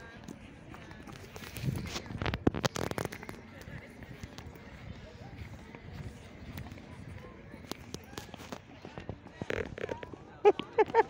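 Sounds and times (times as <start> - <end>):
running on grass: 0.0 - 11.0.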